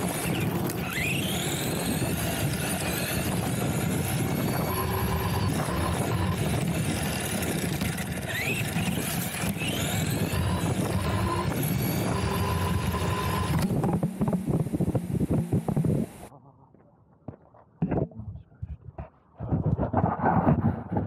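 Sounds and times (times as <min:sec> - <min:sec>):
electric motor whine: 0:00.0 - 0:16.3
camera tumbling along road: 0:00.0 - 0:21.0.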